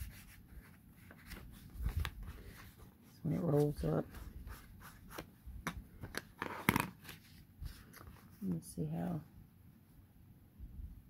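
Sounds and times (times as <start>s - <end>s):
paper rustling and crinkling: 0.0s - 5.3s, 6.0s - 8.5s.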